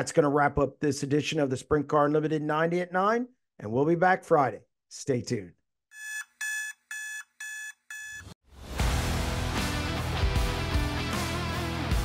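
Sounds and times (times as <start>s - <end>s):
alarm clock beeping: 5.9s - 8.4s
music: 8.5s - 12.0s.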